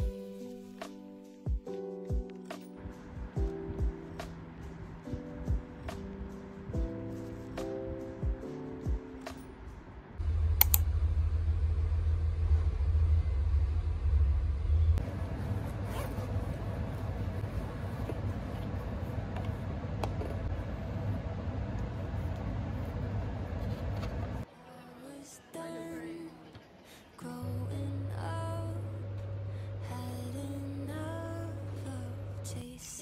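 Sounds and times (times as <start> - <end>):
steady room hum: 7.8 - 33.0
cloth bag rustling: 15.5 - 18.7.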